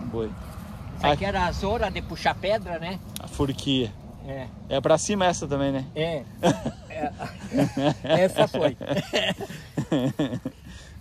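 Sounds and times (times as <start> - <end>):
men laughing: 6.3 - 11.0.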